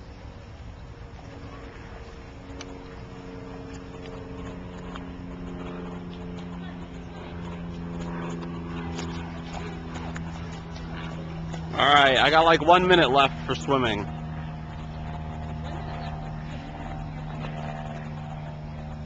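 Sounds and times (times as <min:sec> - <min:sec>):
steady motor hum: 0:00.0 - 0:19.0.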